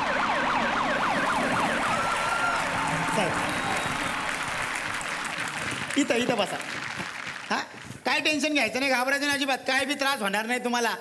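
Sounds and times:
police siren wailing: 0.0 - 5.4
studio audience applause: 1.2 - 8.5.

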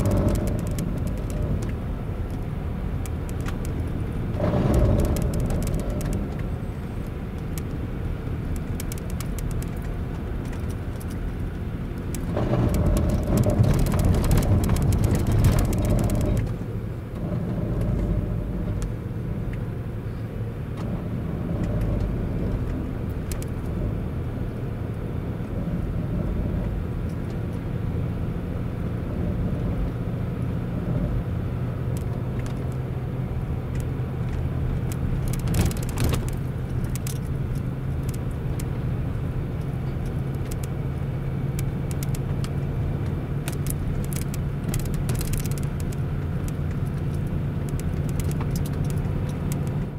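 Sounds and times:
car engine humming: 0.0 - 49.9.

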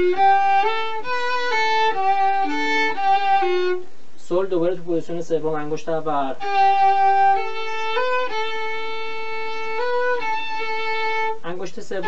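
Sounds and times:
solo violin bowed slowly: 0.0 - 4.3, 6.1 - 12.0.

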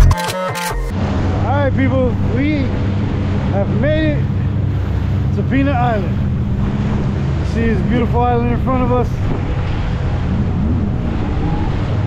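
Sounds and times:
jet ski engine running: 0.9 - 12.0
water noise: 0.9 - 12.0
wind: 0.9 - 12.0.

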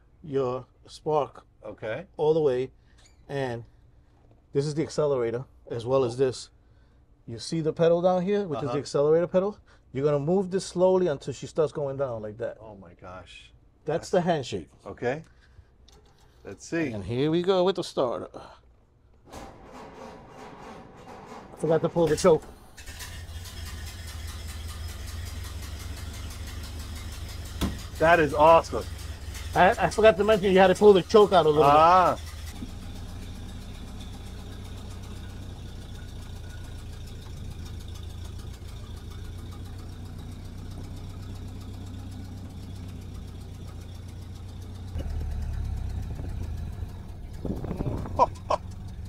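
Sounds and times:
starter cranking car engine: 21.5 - 49.0.

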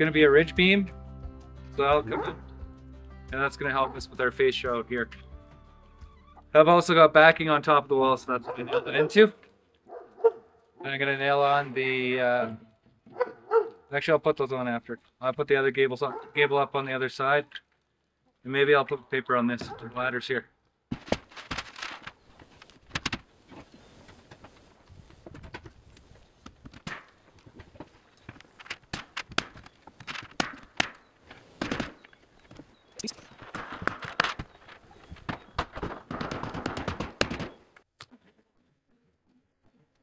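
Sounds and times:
wooden lumber knocks and thuds: 20.9 - 24.5, 25.2 - 25.8, 26.4 - 31.0, 31.6 - 37.7
wood scraping: 20.9 - 37.8.

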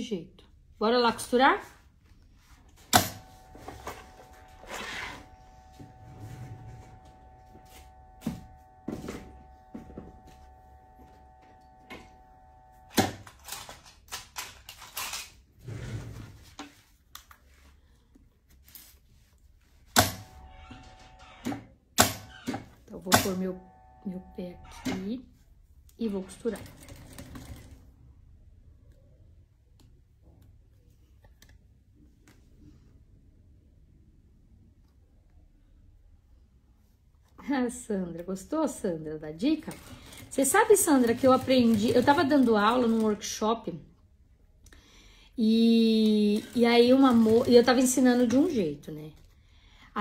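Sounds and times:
industrial sewing machine humming: 3.0 - 13.3, 23.1 - 25.0, 26.4 - 27.8, 39.6 - 43.2, 46.0 - 48.4.

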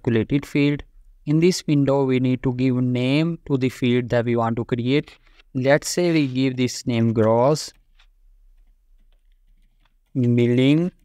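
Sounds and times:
faint keyboard typing: 7.0 - 11.0.

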